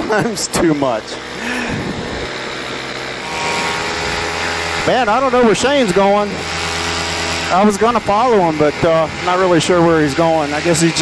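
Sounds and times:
two-stroke engine droning: 0:00.0 - 0:11.0
wind noise: 0:01.6 - 0:02.4.

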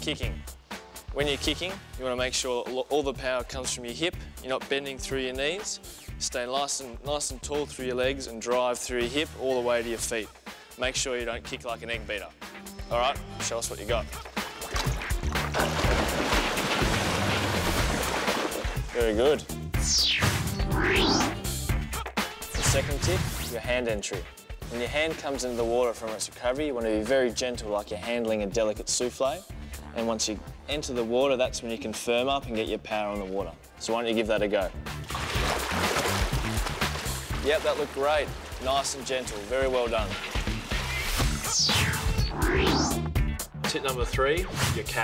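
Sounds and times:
background music: 0:00.0 - 0:45.0
water splashing from kicking: 0:14.7 - 0:18.9, 0:35.0 - 0:40.9.

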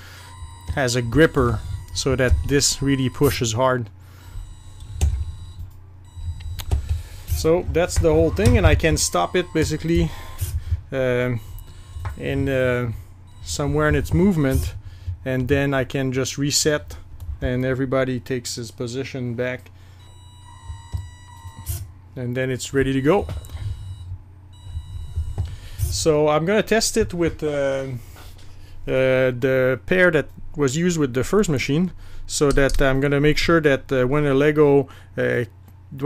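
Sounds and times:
thin steady whine: 0:00.0 - 0:30.0
machine low hum: 0:00.0 - 0:36.0.

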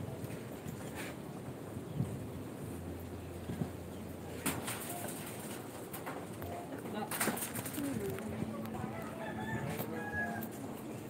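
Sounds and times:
rooster crowing: 0:08.8 - 0:10.7.

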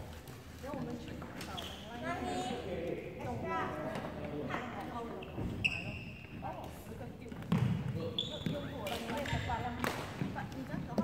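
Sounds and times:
sports shoes squeaking on wooden court: 0:00.7 - 0:02.6, 0:04.8 - 0:11.0.

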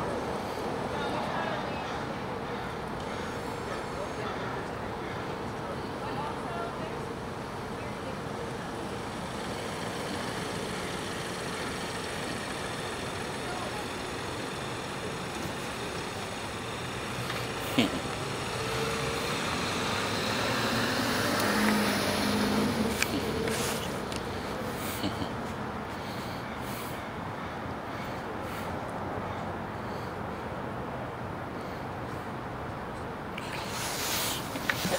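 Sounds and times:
street traffic: 0:00.0 - 0:34.9
car passing close by: 0:16.7 - 0:24.8.

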